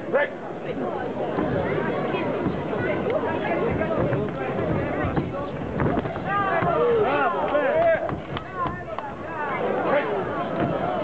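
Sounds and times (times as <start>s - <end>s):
people shouting excitedly: 6.2s - 10.0s.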